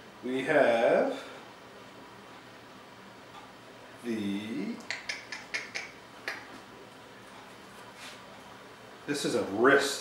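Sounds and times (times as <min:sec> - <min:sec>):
sharp clicks: 0:04.8 - 0:06.5.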